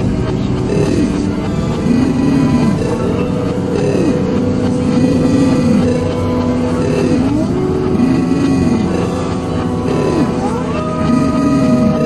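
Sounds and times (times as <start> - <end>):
held drone tones: 0.0 - 12.0
swooping low tones: 0.0 - 12.0.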